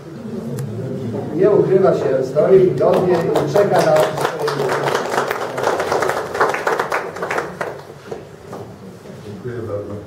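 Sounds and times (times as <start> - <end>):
murmur of voices: 0.0 - 6.4
man talking: 1.4 - 5.8
audience applauding: 2.8 - 8.2.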